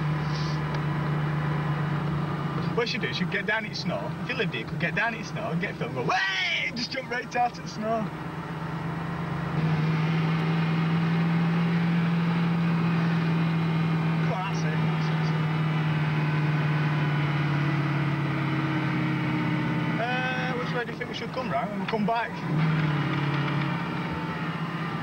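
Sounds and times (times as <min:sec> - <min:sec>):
car engine droning: 0:00.0 - 0:25.0.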